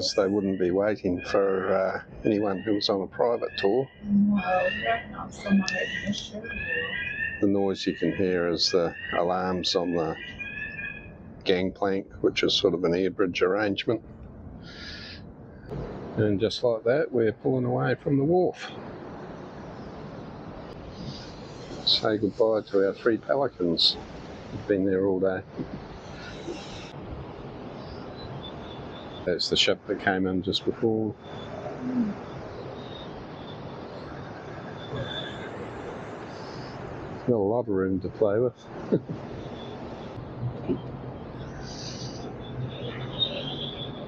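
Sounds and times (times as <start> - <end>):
churning wake water: 0.0 - 3.8, 7.4 - 10.3, 11.5 - 14.0, 20.8 - 27.0
faint high tones: 0.0 - 10.5, 15.7 - 18.8, 20.9 - 24.0
wind: 0.0 - 44.0
low steady background rumble: 11.1 - 28.3.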